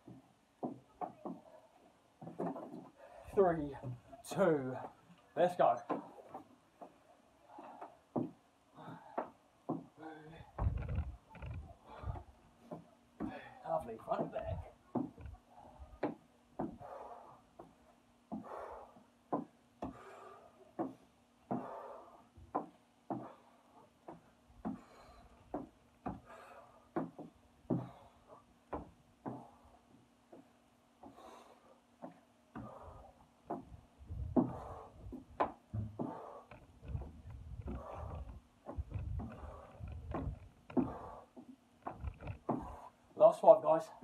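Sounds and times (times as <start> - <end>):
knocks and thumps: 0.0 - 1.5, 2.2 - 2.9, 10.5 - 13.4, 14.1 - 17.0, 22.4 - 28.1, 32.0 - 42.9
man breathing hard: 7.4 - 10.9, 11.8 - 13.6, 14.5 - 43.1.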